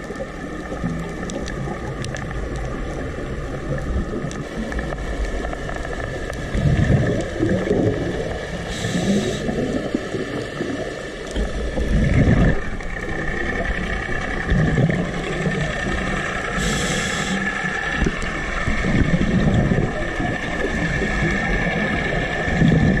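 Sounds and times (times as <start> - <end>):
exhaled bubbles: 0.0 - 23.0
underwater wash: 0.0 - 23.0
regulator inhalation hiss: 8.6 - 9.6, 16.4 - 17.9.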